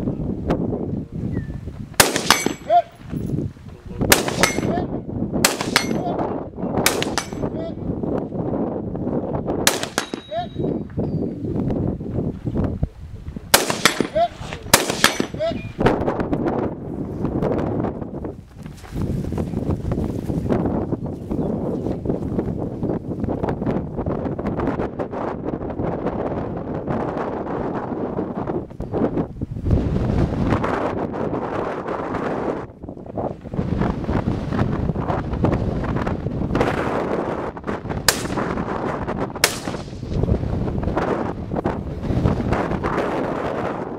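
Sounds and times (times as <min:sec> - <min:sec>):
wind buffeting microphone: 0:00.0 - 0:43.9
gunshots: 0:02.0 - 0:02.9, 0:04.1 - 0:04.8, 0:05.4 - 0:06.1, 0:06.8 - 0:07.5, 0:09.6 - 0:10.6, 0:13.5 - 0:15.5, 0:38.1 - 0:38.6, 0:39.4 - 0:40.2.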